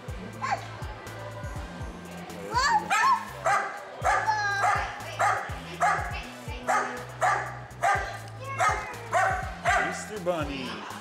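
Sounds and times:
background music with bass line: 0.0 - 11.0
dog barking: 2.9 - 10.1.

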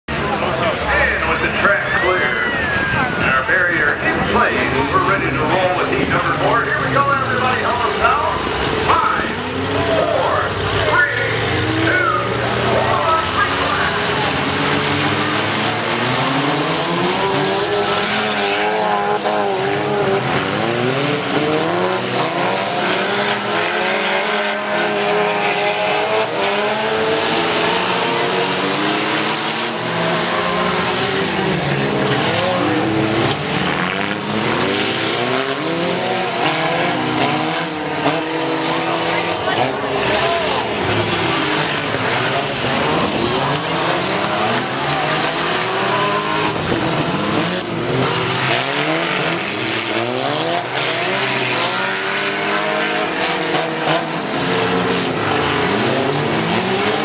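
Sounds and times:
car engines revving: 0.0 - 57.0.

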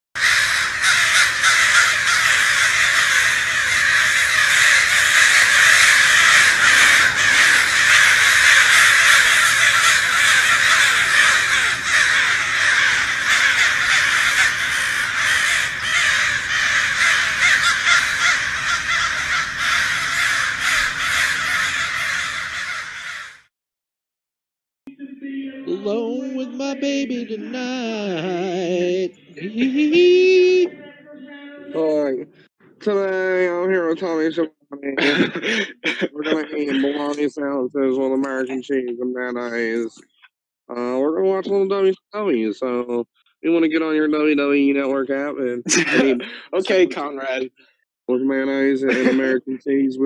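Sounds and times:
flock of birds calling: 0.2 - 23.4, 36.2 - 37.3, 45.7 - 46.4, 48.8 - 49.4.

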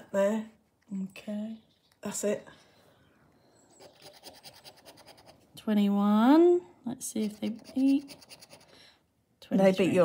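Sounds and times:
scratching a scratch card: 3.8 - 5.5, 7.2 - 8.7.

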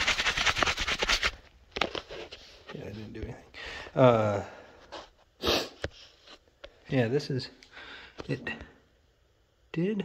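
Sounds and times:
hand rubbing on phone: 0.0 - 3.0.

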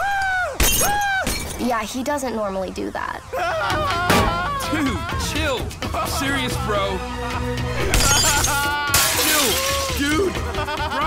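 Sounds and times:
cartoon glass shattering: 7.8 - 10.2.

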